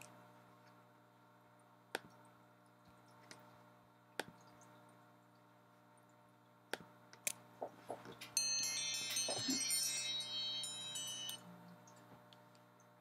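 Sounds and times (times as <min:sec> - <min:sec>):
high ringing chime tones: 0:08.3 - 0:11.6.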